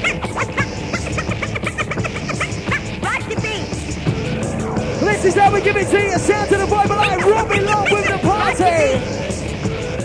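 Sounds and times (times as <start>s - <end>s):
electronic dance music: 0.0s - 9.8s.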